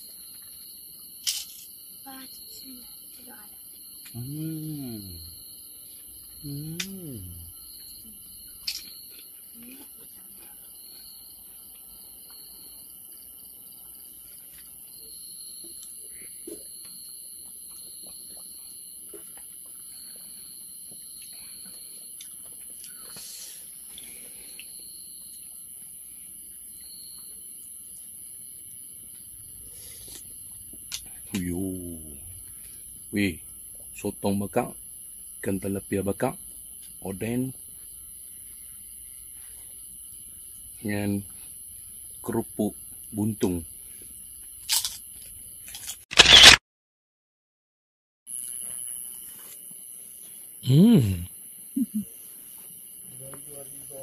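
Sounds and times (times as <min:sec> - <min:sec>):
constant high hiss: 0:00.0 - 0:16.0, 0:17.8 - 0:46.4, 0:48.3 - 0:54.0
night insects trilling: 0:00.0 - 0:46.5, 0:48.3 - 0:54.0.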